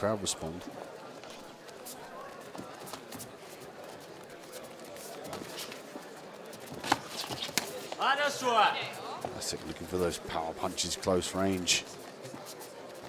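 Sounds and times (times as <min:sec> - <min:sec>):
crowd murmur: 0:00.0 - 0:13.0.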